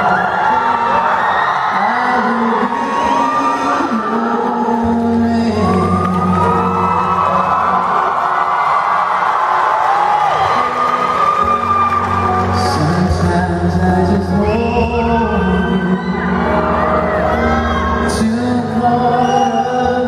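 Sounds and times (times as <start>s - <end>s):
audience whooping and calling: 0.0s - 13.3s, 14.2s - 20.0s.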